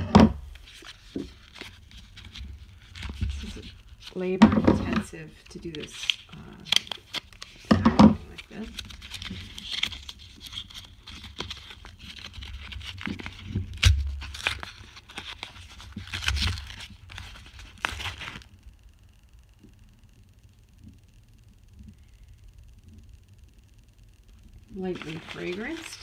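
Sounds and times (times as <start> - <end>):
paper wrapper tearing and crinkling: 0.6 - 4.3, 5.0 - 18.5, 24.9 - 26.0.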